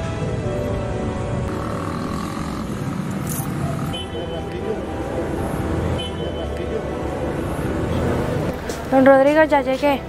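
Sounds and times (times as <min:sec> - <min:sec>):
cars running nearby: 0:00.0 - 0:10.0.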